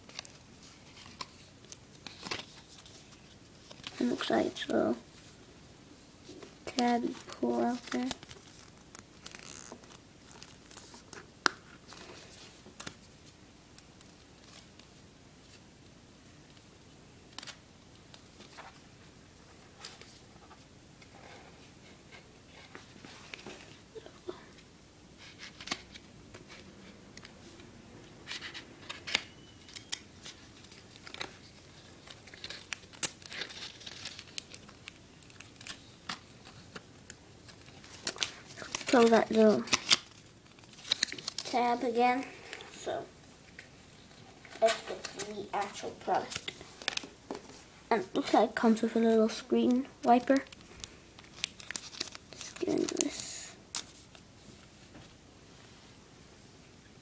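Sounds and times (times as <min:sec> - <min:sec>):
rustling paper packaging: 0:00.0 - 0:05.0, 0:06.3 - 0:13.4, 0:28.2 - 0:43.0, 0:44.0 - 0:54.6.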